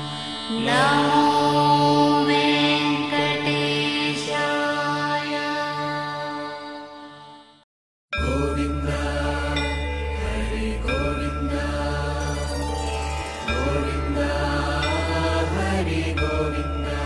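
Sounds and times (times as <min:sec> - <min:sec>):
chanted mantra singing: 0:00.0 - 0:07.6, 0:08.2 - 0:17.0
deep steady drone: 0:08.2 - 0:17.0
instrumental accompaniment: 0:11.5 - 0:17.0.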